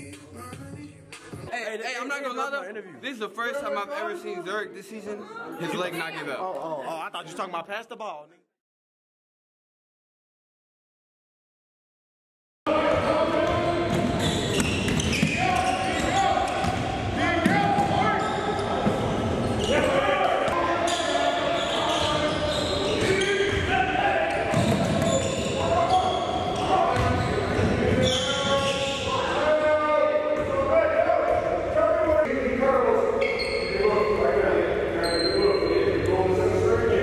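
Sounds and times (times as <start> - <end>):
players chattering: 12.7 - 37.0
basketballs bouncing on hardwood: 24.5 - 25.2.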